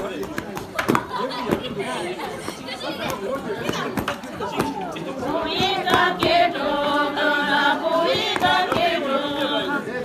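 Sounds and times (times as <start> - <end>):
crowd chatter: 0.0 - 10.0
held singing voices: 4.5 - 10.0.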